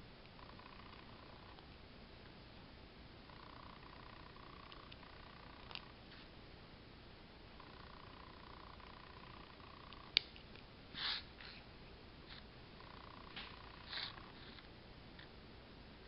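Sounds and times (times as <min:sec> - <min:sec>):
faint hum: 0:00.0 - 0:16.0.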